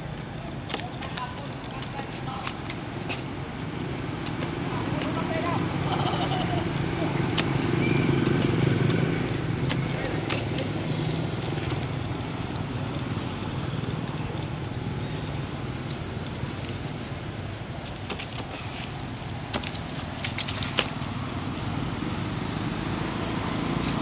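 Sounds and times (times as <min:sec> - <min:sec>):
low engine hum: 0:00.0 - 0:24.0.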